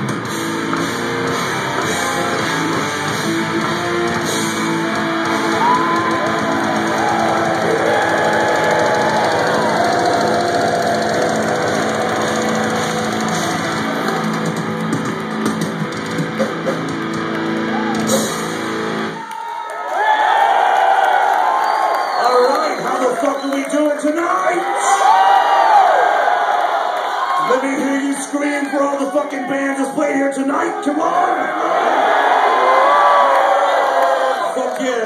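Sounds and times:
death metal band playing live: 0.0 - 19.2
crowd cheering and whooping: 4.6 - 15.4, 17.3 - 29.7, 31.4 - 35.0.

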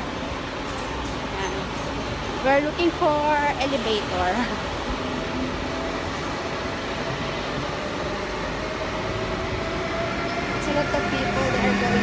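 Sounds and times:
train rumble and hiss: 0.0 - 12.0.

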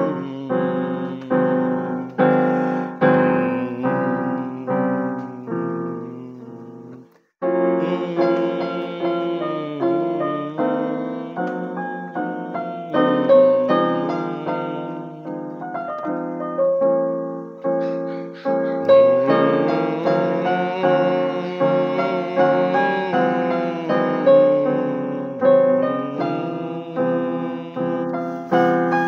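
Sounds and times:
piano chords ringing: 0.0 - 29.0.

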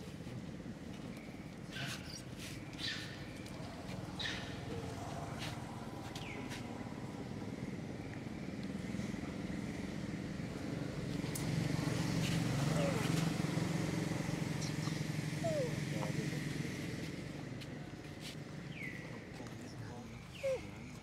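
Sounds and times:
motorbike engine passing: 8.8 - 17.6.

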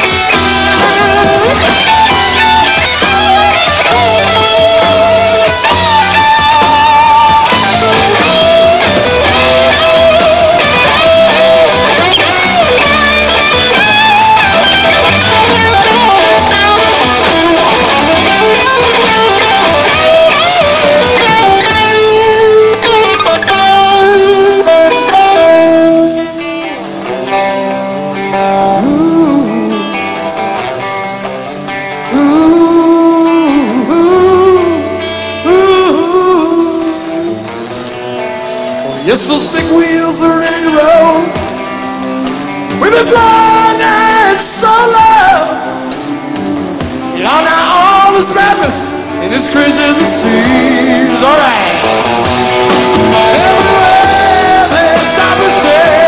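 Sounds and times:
electric guitar solo: 0.0 - 56.0
rock band rhythm section: 0.0 - 56.0.

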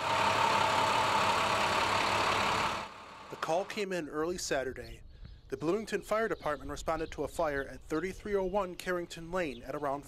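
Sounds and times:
ambulance engine running: 0.0 - 3.8.

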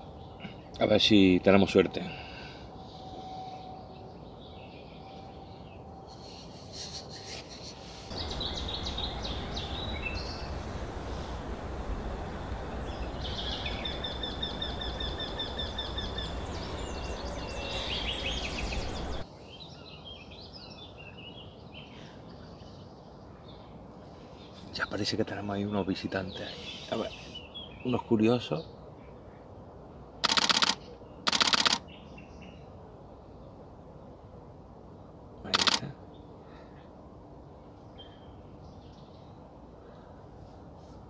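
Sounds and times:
steady outdoor hiss: 0.0 - 41.0
small birds chirping: 2.8 - 29.6, 35.5 - 36.9
bird trilling: 8.1 - 11.5, 12.3 - 19.2.

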